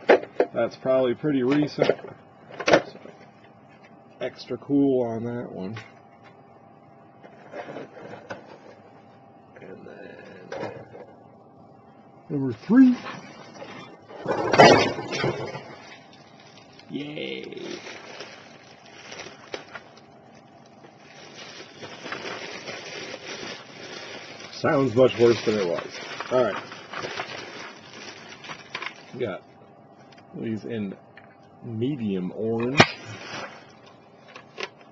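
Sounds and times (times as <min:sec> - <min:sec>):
plastic bag crinkling: 0:15.5 - 0:29.2, 0:32.9 - 0:34.5.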